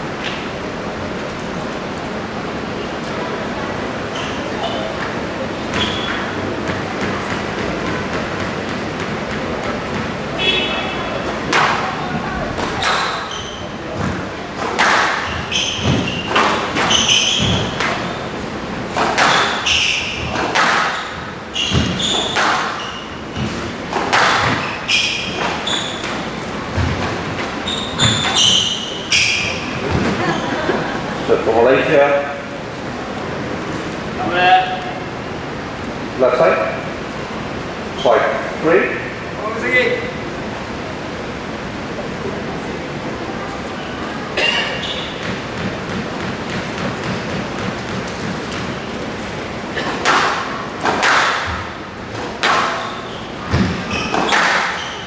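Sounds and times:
murmur of voices: 0.0 - 15.8, 38.0 - 45.9
shoes squeaking on court floor: 4.0 - 34.1, 43.6 - 55.0
squash ball hits: 11.4 - 18.2, 18.9 - 30.4, 45.0 - 48.9, 49.8 - 55.0.

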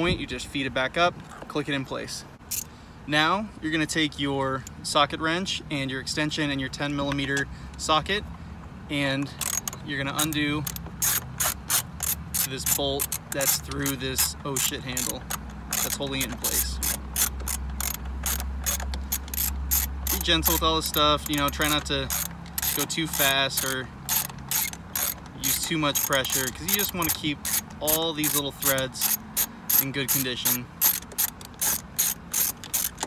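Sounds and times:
ratchet wrench clicking: 2.5 - 2.7, 9.2 - 33.0.

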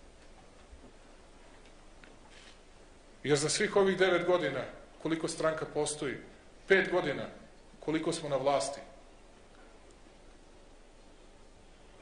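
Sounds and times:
faint clicks: 9.5 - 10.0.

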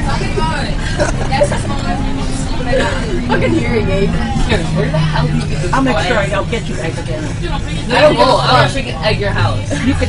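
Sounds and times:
bus engine droning: 0.0 - 10.0
children talking: 0.0 - 10.0.

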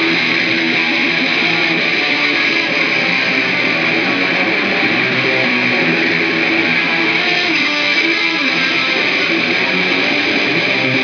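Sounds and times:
electric guitar strumming: 0.0 - 11.0.

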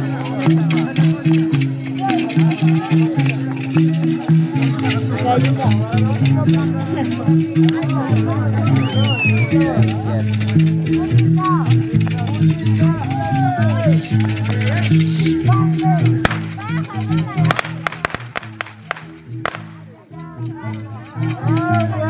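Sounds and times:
andean festive dance music: 16.2 - 20.2
sharp clicks: 16.3 - 16.7, 17.5 - 19.8.

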